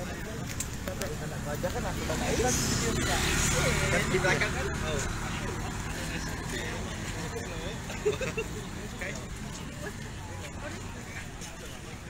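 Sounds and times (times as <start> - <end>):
crowd chatter: 0.0 - 12.0
car driving past: 1.8 - 6.7.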